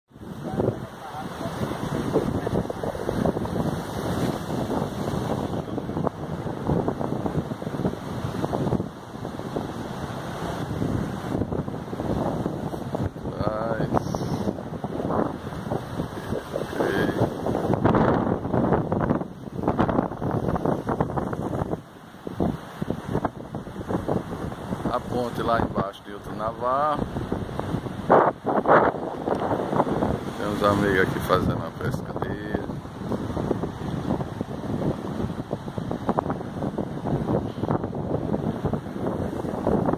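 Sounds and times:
sea surf breaking on rocks: 0.1 - 39.9
wind buffeting microphone: 0.1 - 39.9.

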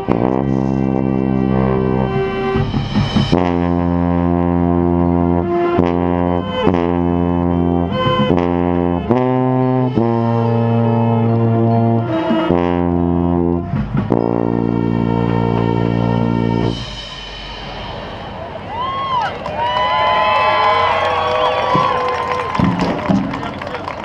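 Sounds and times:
marching band brass chords: 0.0 - 24.0
crowd applause and cheering: 17.1 - 24.0
whistling: 18.2 - 24.0.

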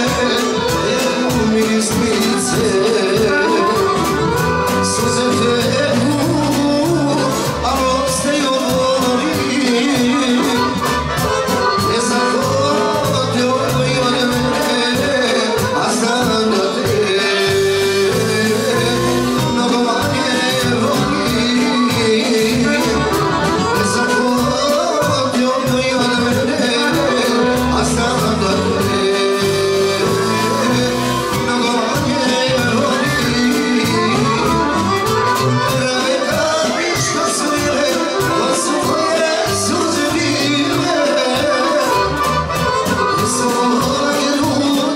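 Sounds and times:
drum kit beat: 0.0 - 44.9
keyboard: 0.0 - 44.9
piano accordion melody: 0.0 - 44.9.

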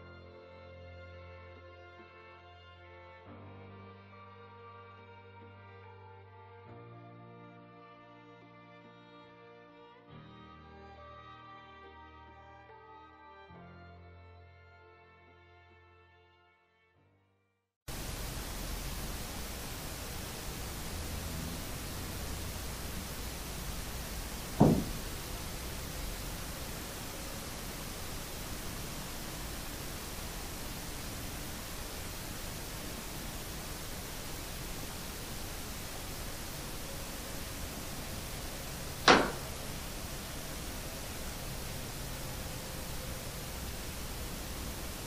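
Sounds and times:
microphone hiss: 17.9 - 45.0
short dull knock: 24.5 - 25.2, 39.1 - 39.7.

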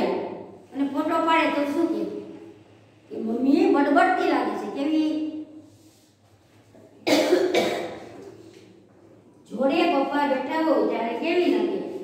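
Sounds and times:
woman coughing: 7.0 - 8.3.

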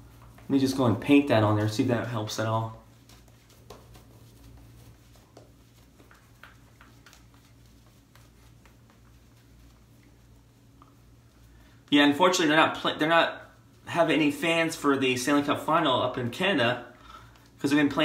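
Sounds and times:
shaving brush strokes: 0.0 - 12.4
steady low hum: 0.0 - 18.0.

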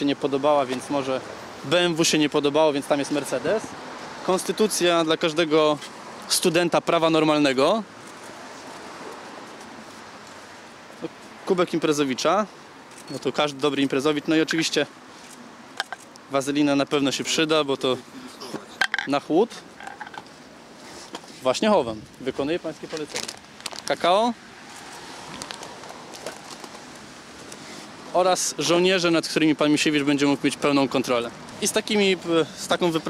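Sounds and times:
outdoor background noise: 0.0 - 33.0
packet crackling: 22.9 - 24.0, 25.2 - 27.6
rummaging in fabric bag: 25.0 - 27.0.

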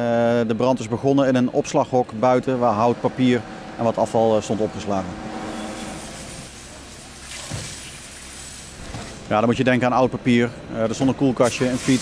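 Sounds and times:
fire engine rumbling: 0.0 - 12.0
broad hiss: 11.4 - 12.0.

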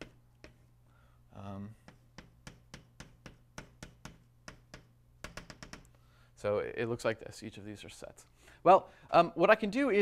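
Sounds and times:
chalk tapping on a blackboard: 0.0 - 0.7, 1.8 - 5.9
low electrical hum: 0.0 - 10.0.

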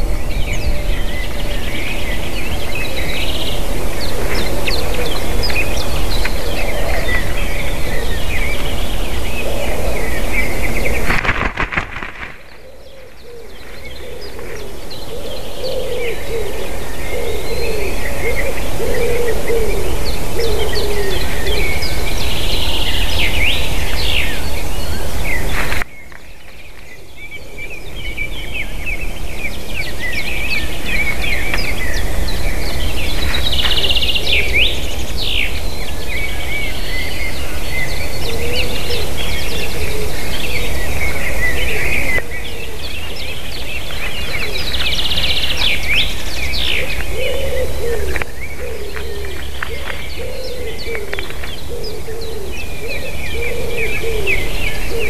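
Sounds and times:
low cooing call: 0.0 - 25.5, 26.9 - 55.0
songbirds chirping and trilling: 0.0 - 55.0.

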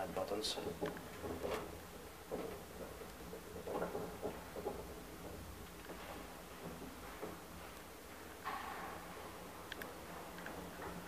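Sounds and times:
soft knocks and rattles: 0.0 - 11.0.

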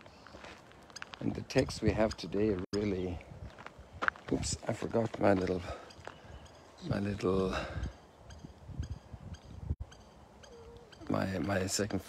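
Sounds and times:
footsteps on gravel: 0.0 - 6.3.

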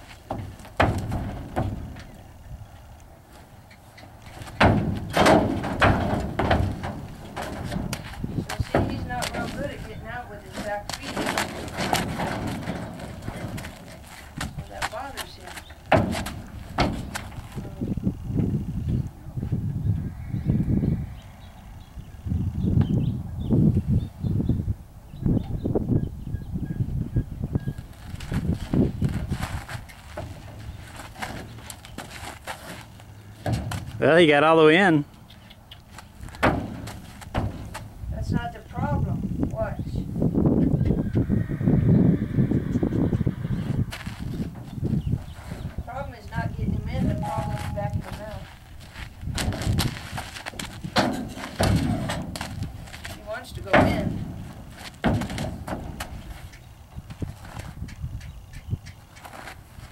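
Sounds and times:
horse hooves knocking on trailer floor: 0.2 - 2.2, 4.3 - 17.7, 28.3 - 32.8, 33.4 - 34.1, 36.3 - 38.0, 49.3 - 57.8.

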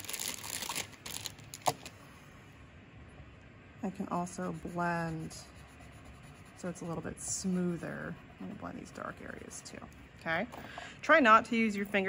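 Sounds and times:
paper rustling and crinkling: 0.0 - 1.9.

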